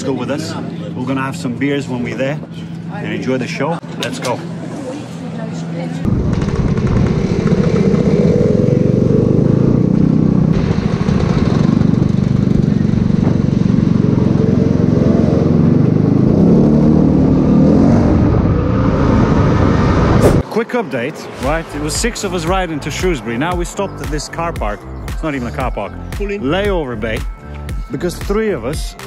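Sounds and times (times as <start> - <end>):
wind noise: 6.1 - 14.5, 16.3 - 20.4
scooter engine running: 6.1 - 17.6.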